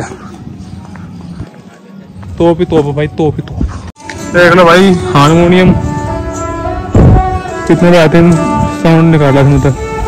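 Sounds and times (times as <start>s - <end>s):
footsteps on stone paving: 0.0s - 4.6s
wind rumble on microphone: 6.8s - 7.6s.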